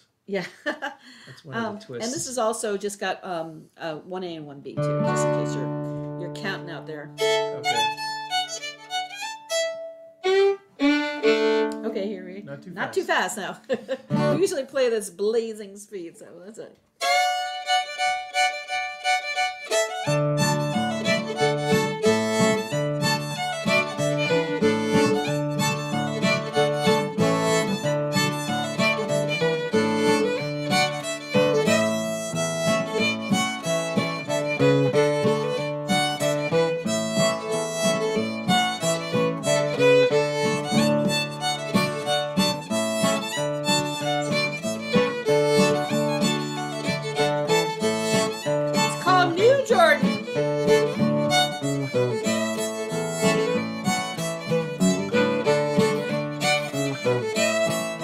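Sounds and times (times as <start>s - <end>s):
fiddle tune: 1.5s - 2.4s, 4.6s - 14.9s, 17.0s - 58.0s
strummed acoustic guitar: 4.8s - 8.9s, 14.0s - 14.6s, 17.1s - 58.0s.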